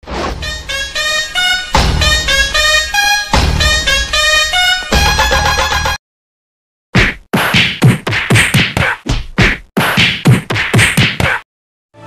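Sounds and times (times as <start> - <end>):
punch and slap sound effects: 7.0 - 11.4.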